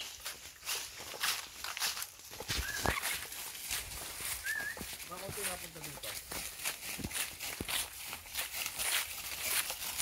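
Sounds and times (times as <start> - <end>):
footsteps crunching on dry leaves: 0.0 - 10.0.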